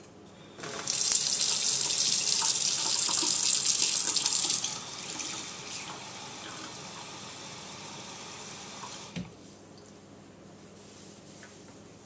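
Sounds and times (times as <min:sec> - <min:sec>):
faucet running water: 0:00.6 - 0:09.2.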